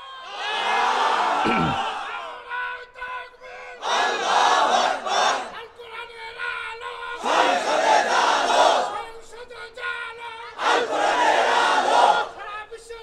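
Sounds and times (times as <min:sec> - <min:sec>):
crowd of men shouting in unison: 0:00.0 - 0:02.4, 0:03.4 - 0:05.6, 0:07.2 - 0:09.0, 0:10.6 - 0:12.4.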